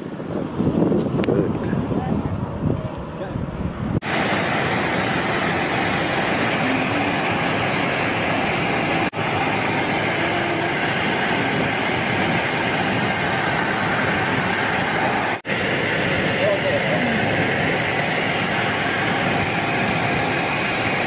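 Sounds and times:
aircraft cabin engine noise: 0:00.0 - 0:21.0.

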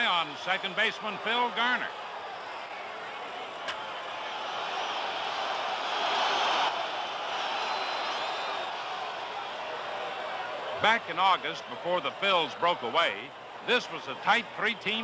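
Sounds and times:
crowd cheering: 0:00.0 - 0:15.0.

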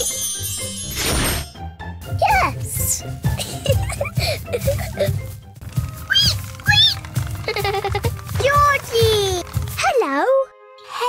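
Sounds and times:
children's music with low beat: 0:01.6 - 0:11.0.

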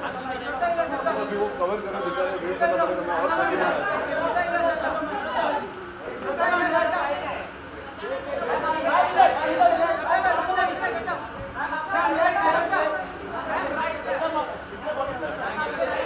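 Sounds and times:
indistinct chatter of voices: 0:00.0 - 0:16.0.

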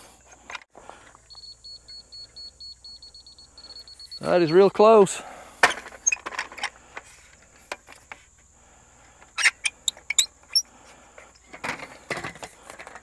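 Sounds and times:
faint steady high tone: 0:01.2 - 0:05.3
short high chirps: 0:01.3 - 0:04.4.

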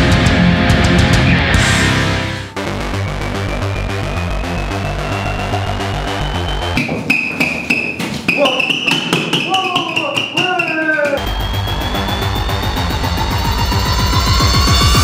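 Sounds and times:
electronic music beat: 0:02.5 - 0:15.0
rising sweep: 0:11.2 - 0:15.0.

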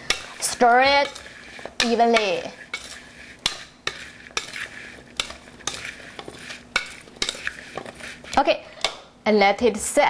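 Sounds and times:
wet rustling scrape in bowl: 0:00.0 - 0:08.6.

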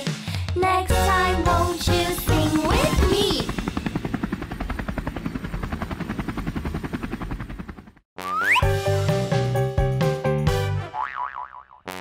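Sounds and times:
helicopter rotor blades chopping: 0:00.9 - 0:08.0.

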